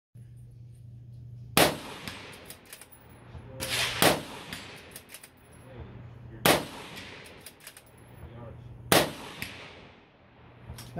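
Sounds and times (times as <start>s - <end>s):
rifle shots with echo: 1.6s - 2.9s, 3.5s - 10.8s
rifle bolt clicks: 4.5s - 5.4s, 7.2s - 7.9s.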